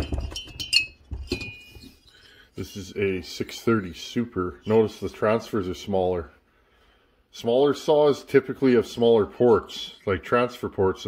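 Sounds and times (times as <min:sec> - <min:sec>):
metal cylinders clinking: 0:00.0 - 0:03.8.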